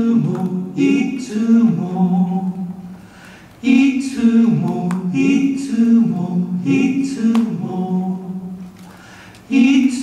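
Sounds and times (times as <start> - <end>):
two men singing in harmony: 0.0 - 2.7, 3.6 - 8.5, 9.5 - 10.0.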